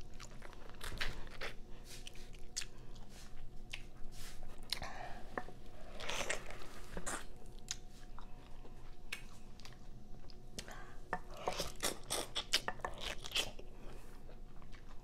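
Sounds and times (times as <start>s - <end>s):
crunchy biting and chewing: 11.4s - 13.7s.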